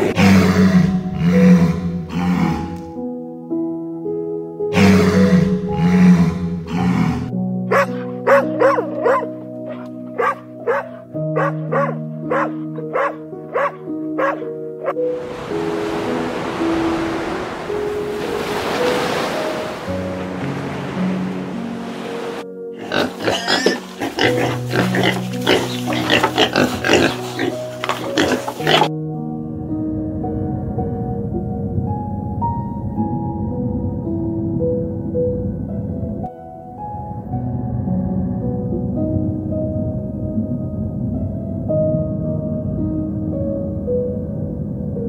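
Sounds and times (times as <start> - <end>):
soft background music: 0.0 - 45.0
sea lions barking: 4.7 - 28.9
surf hiss: 15.0 - 22.5
rapid uneven animal calls: 22.8 - 28.9.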